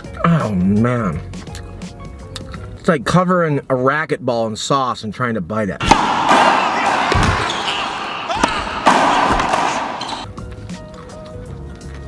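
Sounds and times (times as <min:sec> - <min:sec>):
soft background music: 0:00.0 - 0:05.8, 0:10.2 - 0:12.0.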